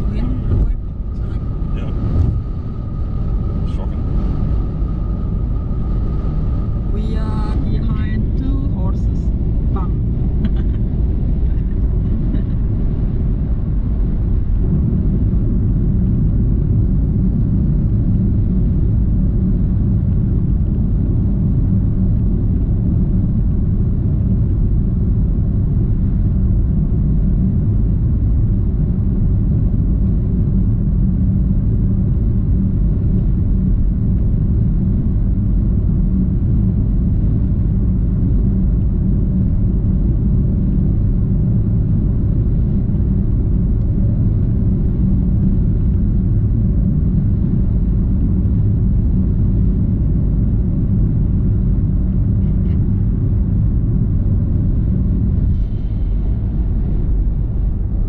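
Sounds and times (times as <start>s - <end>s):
car road rumble inside cabin: 0.0s - 58.0s.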